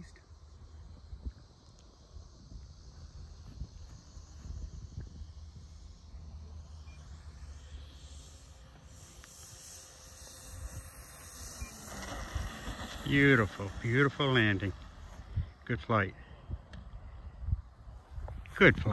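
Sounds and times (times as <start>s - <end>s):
model plane propellers hissing: 0.0s - 18.9s.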